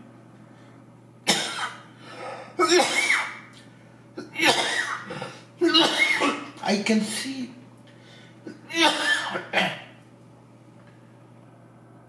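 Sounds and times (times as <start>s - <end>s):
man coughing: 1.3s - 1.8s, 2.6s - 3.4s, 4.2s - 7.2s, 8.5s - 10.0s.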